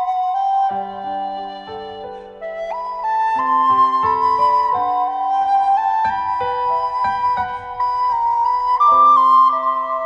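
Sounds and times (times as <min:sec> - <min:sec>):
piano accompaniment: 0:00.0 - 0:10.0
recorder melody: 0:00.0 - 0:10.0.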